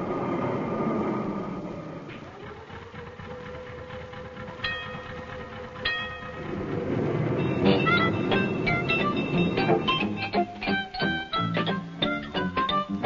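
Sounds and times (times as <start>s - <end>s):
tram running with a hum: 0.0s - 13.0s
plucked-string music: 2.9s - 13.0s
tram bell ringing: 4.6s - 12.2s.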